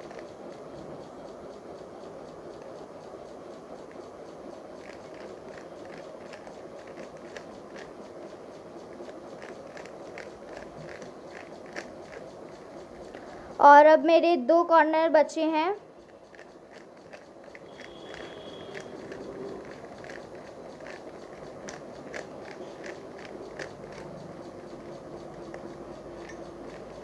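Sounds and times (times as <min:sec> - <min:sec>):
puzzle cube plastic clicks: 0:04.8 - 0:07.9, 0:09.0 - 0:12.3, 0:16.3 - 0:24.1.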